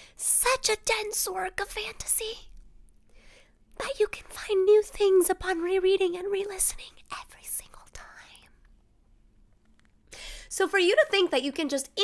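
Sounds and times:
woman whispering: 3.8 - 8.6.

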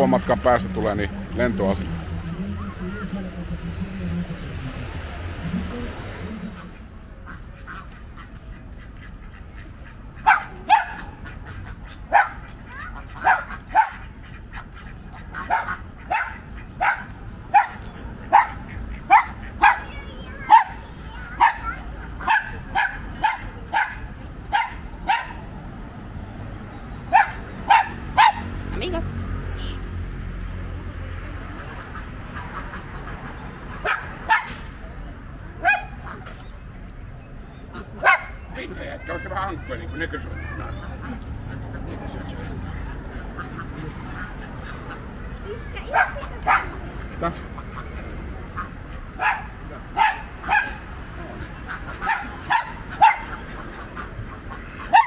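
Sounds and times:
ducks quacking: 0.0 - 55.0.

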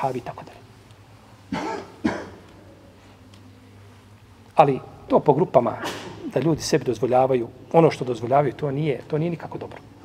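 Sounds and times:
man coughing: 1.5 - 2.5, 5.7 - 6.3.

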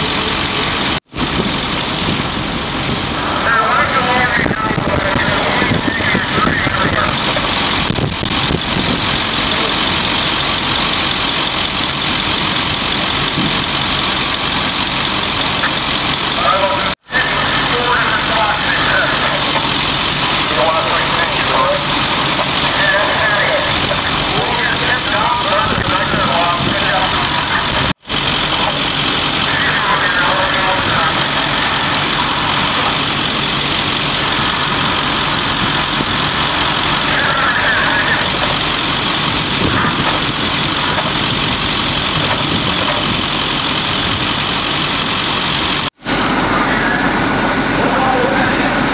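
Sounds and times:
fire truck engines idling: 0.0 - 48.9
faint voices: 3.1 - 7.8, 16.3 - 33.3, 35.8 - 41.4, 46.2 - 48.9.

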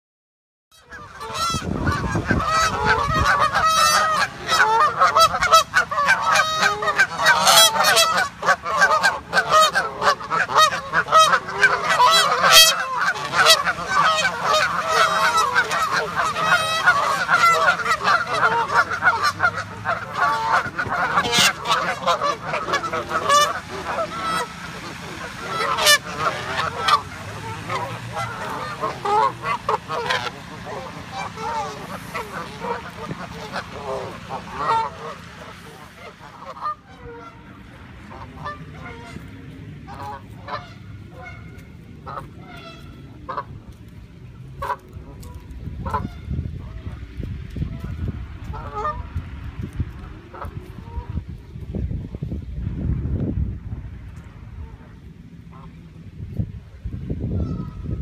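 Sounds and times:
geese honking: 0.7 - 52.3, 54.1 - 56.1, 57.2 - 58.0.

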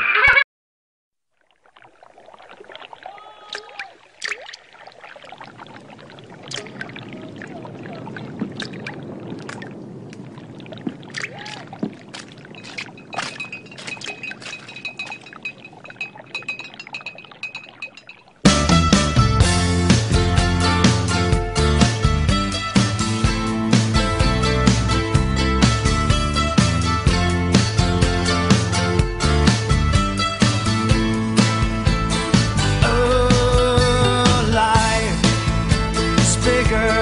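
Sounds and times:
sharp clicks and clinks: 12.6 - 18.4.

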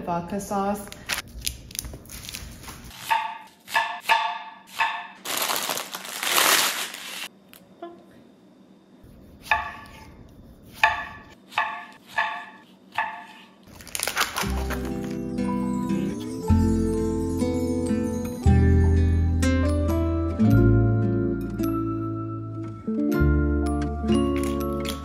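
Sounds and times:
music: 14.4 - 25.0.

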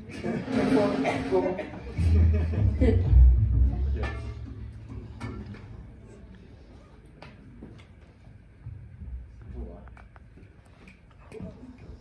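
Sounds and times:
low musical note: 0.5 - 6.0.

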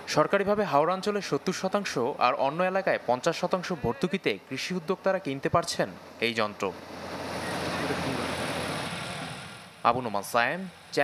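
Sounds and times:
combine harvester engine running: 4.5 - 11.0.

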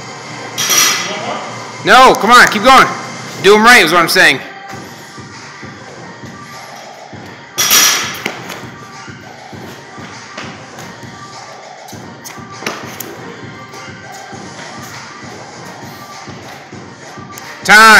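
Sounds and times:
background music: 0.0 - 17.9.

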